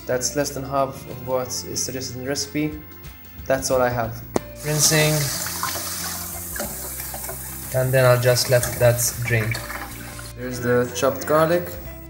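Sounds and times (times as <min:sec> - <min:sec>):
tap water running onto sieve: 0:04.6 - 0:10.3.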